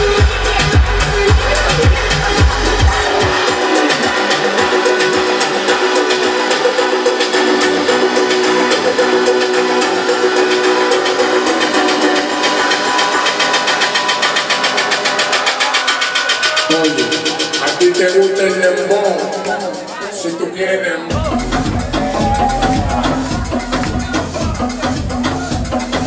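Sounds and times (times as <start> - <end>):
bass drum: 0.0 - 5.6, 21.1 - 26.0
electronic dance music: 0.0 - 26.0.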